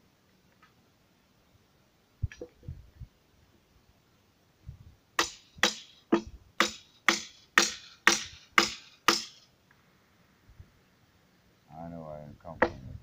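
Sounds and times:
hand tool chopping wood: 0:05.2 - 0:09.4.

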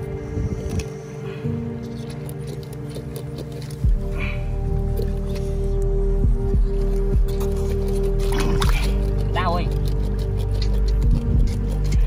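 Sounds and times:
background music with sustained notes: 0:00.0 - 0:12.0.

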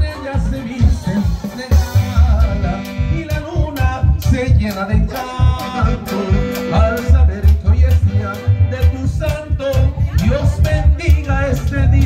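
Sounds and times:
live band playing upbeat song: 0:00.0 - 0:12.0.

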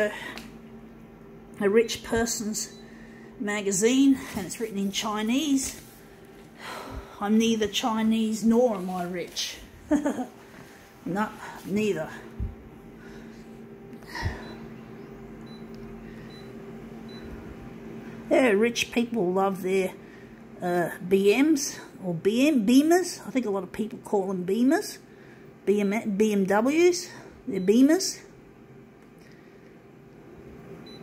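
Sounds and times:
photocopier humming: 0:00.0 - 0:31.0.

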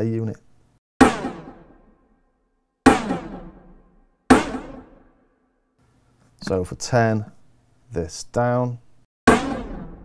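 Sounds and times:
drum rimshot hits with echoes: 0:01.0 - 0:01.8, 0:02.9 - 0:05.1, 0:09.3 - 0:10.0.

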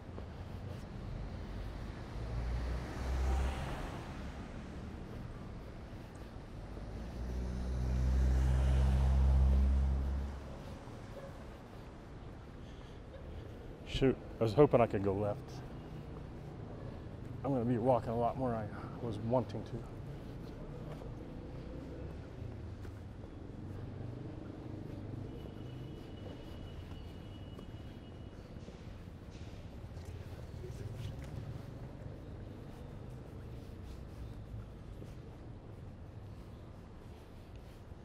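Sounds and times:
distant traffic rumble: 0:00.0 - 0:38.0.

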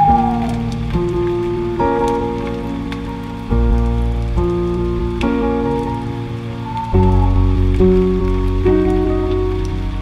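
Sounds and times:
slow piano music: 0:00.0 - 0:10.0
soft steady crackle: 0:00.0 - 0:10.0.

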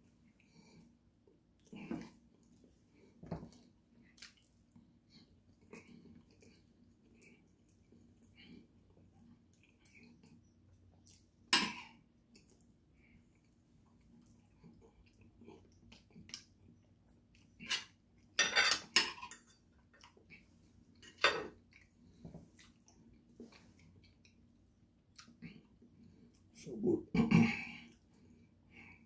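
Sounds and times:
cutlery clinking on a plate: 0:17.6 - 0:19.6, 0:21.0 - 0:21.6.

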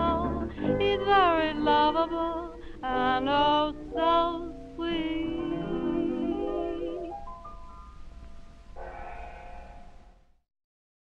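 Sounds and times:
low hum of old recording: 0:00.0 - 0:10.4.

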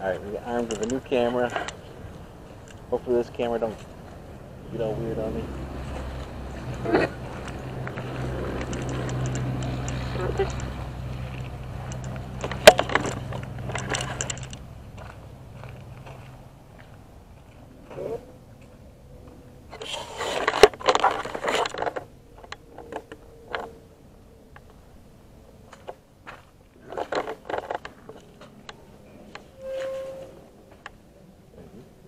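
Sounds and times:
steady low rumble: 0:01.5 - 0:19.8.

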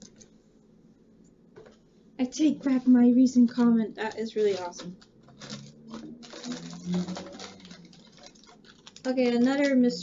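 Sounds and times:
packaging rustling and crinkling: 0:02.6 - 0:10.0.

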